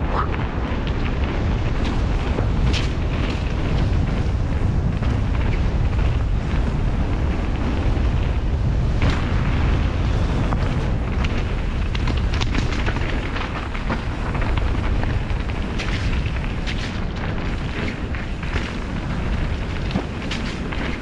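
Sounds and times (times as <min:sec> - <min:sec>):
bike clicks and rattles: 0:00.0 - 0:21.0
wind buffeting microphone: 0:00.0 - 0:21.0.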